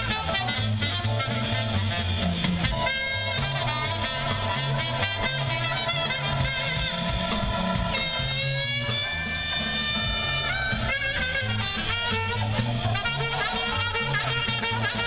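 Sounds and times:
jazz band playing outdoors: 0.0 - 15.0.

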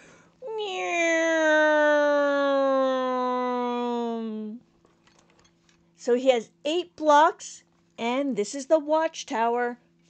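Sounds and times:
woman imitating a jet plane: 0.4 - 4.6.

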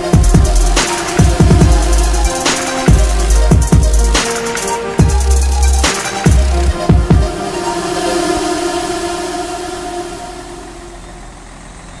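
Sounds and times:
background music: 0.0 - 11.6
truck diesel engine running: 0.0 - 12.0.

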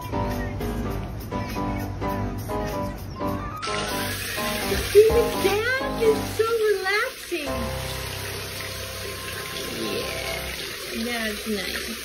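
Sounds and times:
water running in a bathtub: 3.7 - 12.0.

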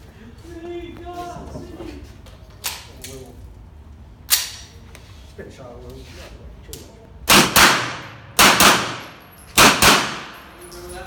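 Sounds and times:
gunshots echoing indoors: 7.3 - 10.7.

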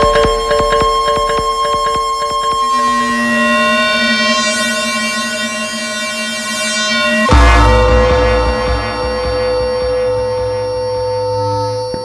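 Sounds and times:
sustained synth tone: 0.0 - 12.0.

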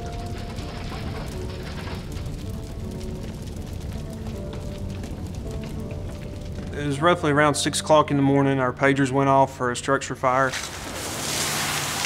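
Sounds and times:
fire crackling and popping: 0.0 - 12.0
soft background music: 0.0 - 12.0.

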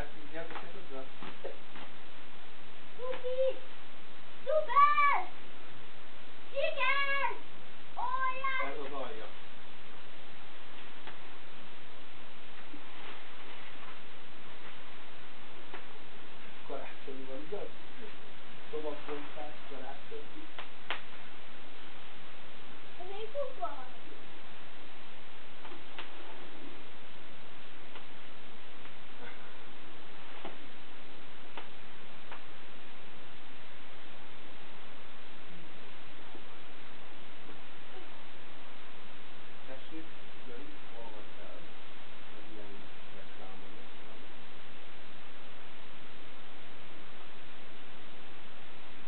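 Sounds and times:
steady background hiss: 0.0 - 49.0.

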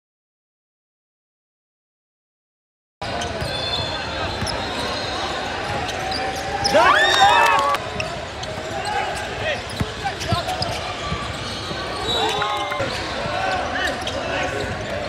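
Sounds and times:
hubbub of voices: 3.0 - 15.0
high sliding shoe squeaks: 3.1 - 6.8, 8.0 - 14.8.

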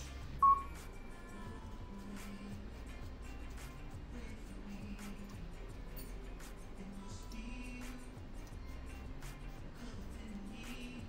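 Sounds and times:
faint background music: 0.0 - 11.0
short high electronic beep: 0.4 - 0.8.

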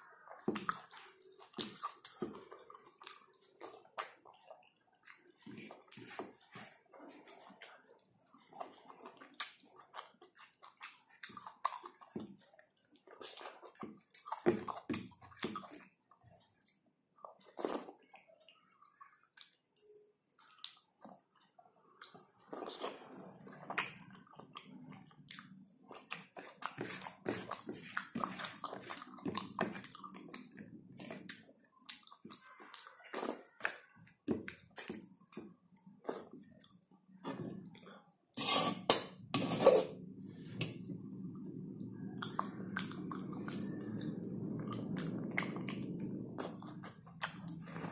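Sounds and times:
chewing and lip-smacking: 0.1 - 38.0, 40.5 - 47.9
low steady hum: 35.7 - 47.9.

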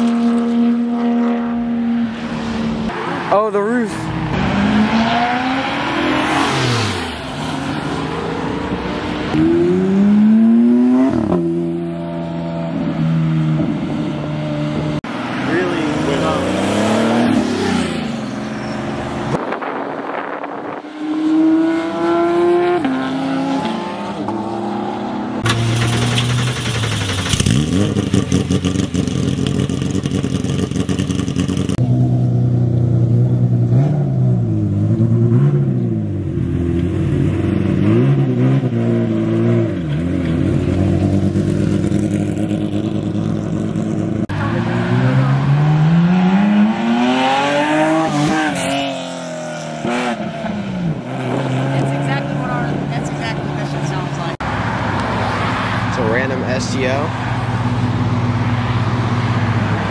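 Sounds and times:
car engines revving: 0.0 - 59.9
car passing by: 51.2 - 59.9.

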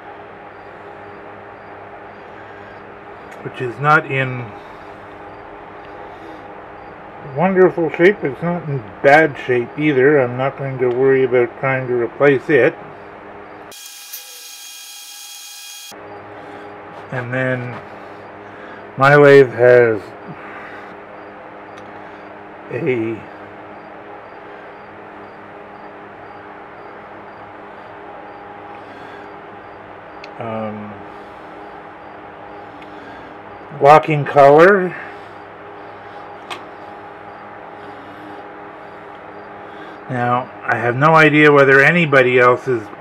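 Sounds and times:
low background hum: 0.0 - 43.0.

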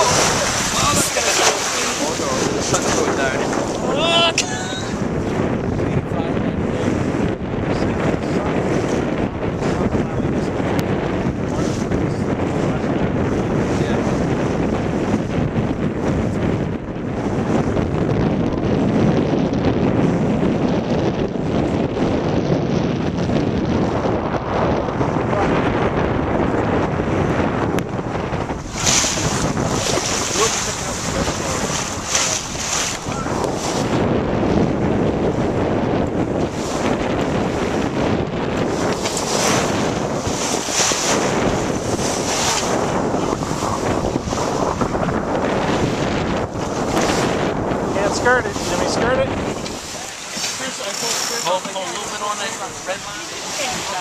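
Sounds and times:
water rushing along hull: 0.0 - 54.0
wind buffeting microphone: 0.0 - 54.0.

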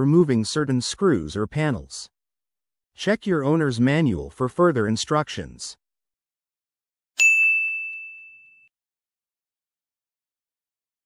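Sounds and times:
bell-like chime ding: 7.2 - 8.7.

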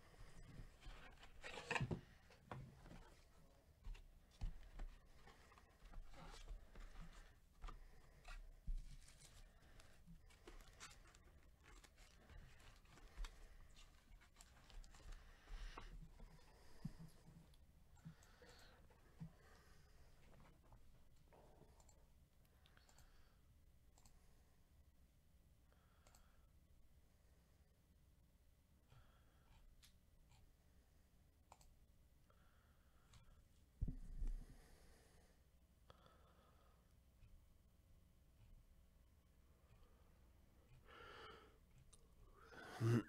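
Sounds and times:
faint clicks: 26.0 - 26.3, 31.5 - 31.8
person breathing in: 40.7 - 41.6, 42.3 - 43.0
person exhaling softly: 42.3 - 43.0.

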